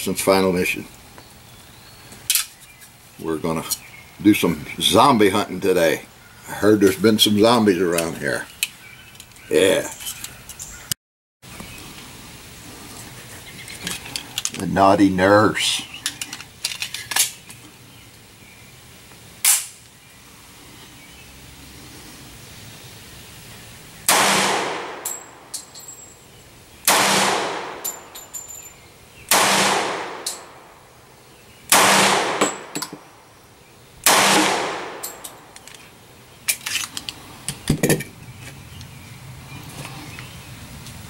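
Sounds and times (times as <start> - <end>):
sharp crack: 19.4 - 20.0, 24.0 - 25.7, 26.8 - 28.2, 29.3 - 30.8, 31.7 - 33.1, 34.0 - 35.8
pistol shots with echo: 24.1 - 25.4, 26.9 - 28.1, 29.3 - 30.7, 31.7 - 32.8, 34.0 - 35.3.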